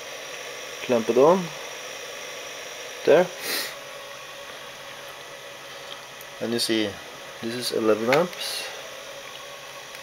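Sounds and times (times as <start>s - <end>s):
inverter humming: 0.0s - 10.0s
brief hiss: 3.4s - 3.8s.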